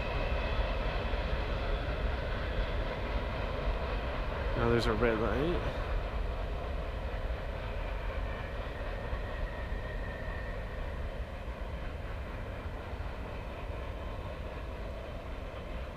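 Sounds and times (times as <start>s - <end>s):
freight train rumbling: 0.0s - 15.9s.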